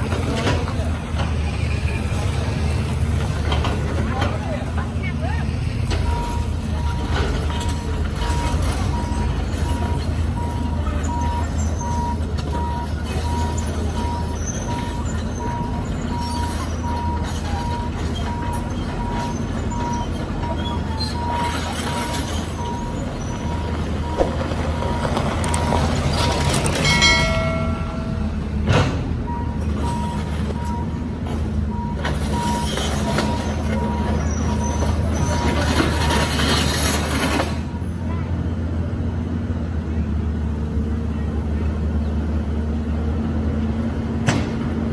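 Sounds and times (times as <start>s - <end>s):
excavator diesel engine running: 0.0s - 44.9s
passing traffic: 0.0s - 44.9s
repeated beeping alarm: 6.0s - 20.1s, 21.1s - 25.6s, 29.2s - 31.1s, 31.7s - 36.4s.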